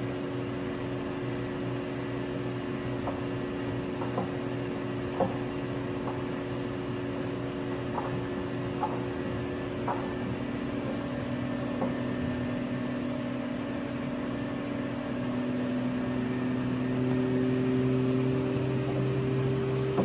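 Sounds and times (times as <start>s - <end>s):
washing machine humming: 0.0s - 20.0s.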